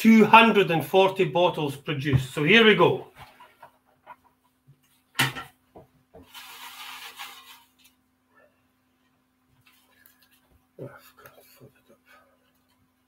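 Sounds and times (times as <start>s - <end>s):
paper tickets rustling: 6.3s - 7.9s.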